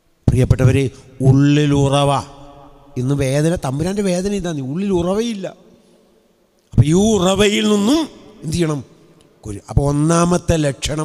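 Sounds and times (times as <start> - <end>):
man speaking through microphone: 0.3 - 5.6, 6.8 - 11.0.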